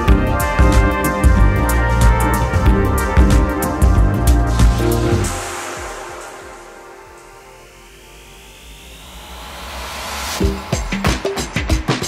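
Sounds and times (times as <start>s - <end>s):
music beat: 0.0s - 9.3s, 10.1s - 12.0s
whooshing noise sweep: 3.2s - 12.0s.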